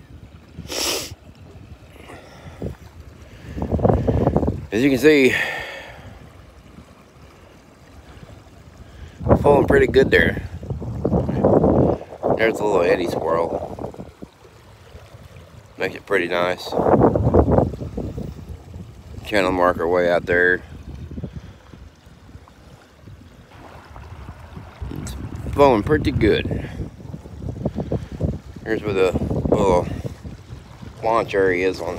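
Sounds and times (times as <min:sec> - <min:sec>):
river current rushing: 0:00.0 - 0:31.9
wind rumbling on microphone: 0:00.0 - 0:31.9.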